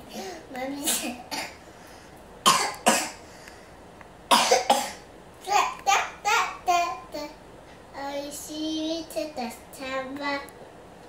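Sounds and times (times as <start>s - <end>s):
person coughing: 2.5s - 3.2s, 4.3s - 5.0s.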